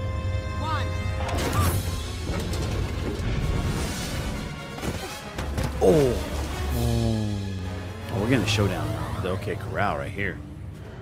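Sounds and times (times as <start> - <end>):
orchestral film music: 0.0 - 11.0.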